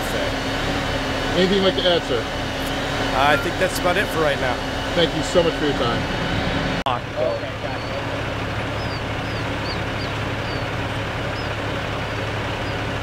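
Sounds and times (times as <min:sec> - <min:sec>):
engines idling drone: 0:00.0 - 0:13.0.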